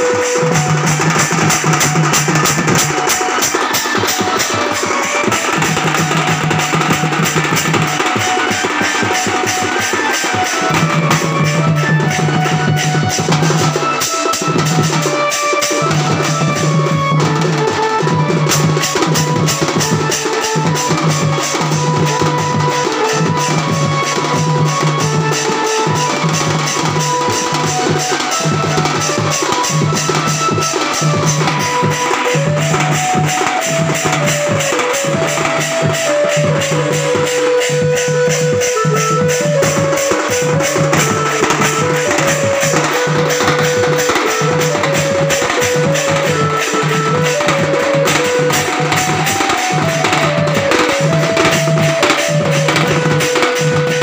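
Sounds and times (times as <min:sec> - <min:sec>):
small drum beaten rapidly: 0:00.0 - 0:54.0
stepping melody: 0:00.0 - 0:54.0.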